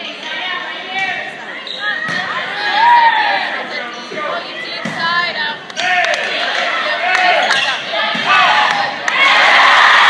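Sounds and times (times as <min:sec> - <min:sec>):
voices and shouts: 0:00.0 - 0:10.0
volleyball hits: 0:07.1 - 0:09.4.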